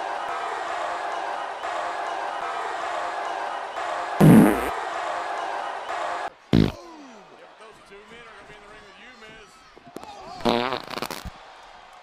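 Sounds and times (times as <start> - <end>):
fart sound effect: 4.2 - 4.7, 6.6 - 6.8, 10.4 - 11.3.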